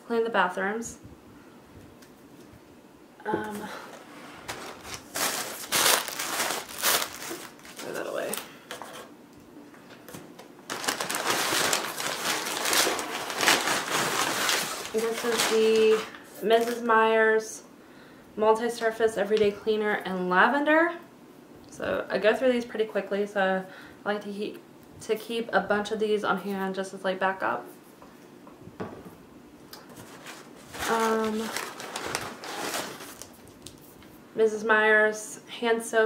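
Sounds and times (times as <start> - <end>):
handling sounds: 3.4 - 9.1
packaging crinkling: 4.4 - 8.5, 10.6 - 16.8, 29.9 - 33.8.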